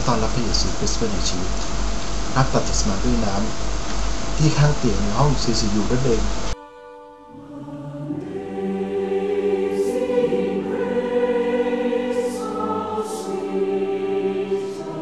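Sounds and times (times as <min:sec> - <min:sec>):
choir singing held chords: 0:04.4 - 0:15.0.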